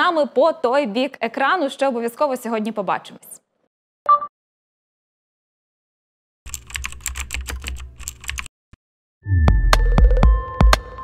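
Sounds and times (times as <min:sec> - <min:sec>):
computer keyboard key clicks: 0:06.5 - 0:08.5.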